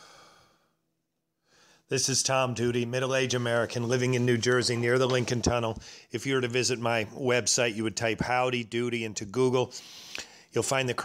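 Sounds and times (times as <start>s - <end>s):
man breathing audibly: 0.0s - 0.8s, 1.4s - 1.9s, 5.8s - 6.2s, 9.7s - 10.5s
man speaking: 1.9s - 9.8s, 10.5s - 11.0s.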